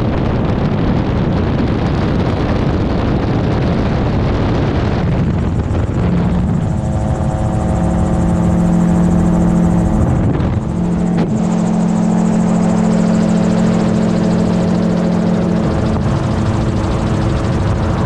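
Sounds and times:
gyrocopter engine and propeller drone: 0.0s - 18.0s
wind rushing over microphone: 0.0s - 18.0s
low hum with held tone: 2.6s - 18.0s.

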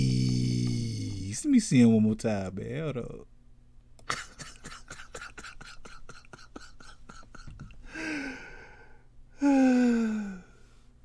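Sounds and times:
person sighing: 0.0s - 1.4s, 6.6s - 10.7s.

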